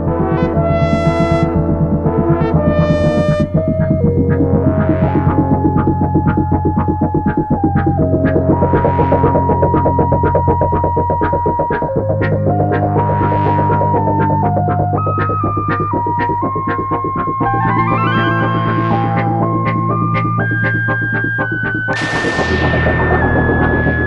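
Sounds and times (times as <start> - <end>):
synthesiser bass drone: 0.0 - 24.0
synthesiser lead line: 0.0 - 24.0.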